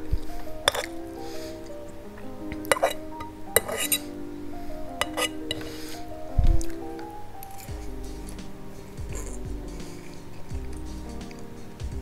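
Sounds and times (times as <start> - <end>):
background music: 0.0 - 12.0
fork clinking against bowl: 0.7 - 1.0, 2.6 - 4.1, 5.0 - 5.7.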